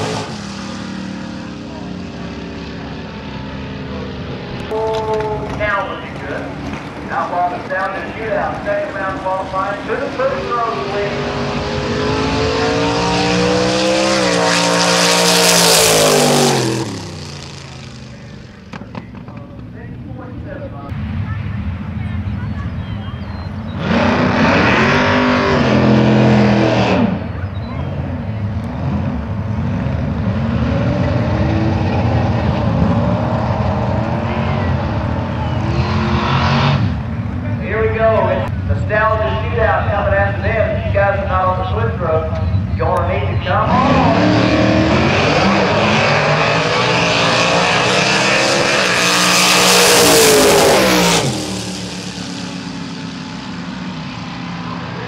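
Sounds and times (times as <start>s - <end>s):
drag car engine revving and idling: 0.0s - 4.7s, 5.4s - 19.4s, 20.4s - 55.0s.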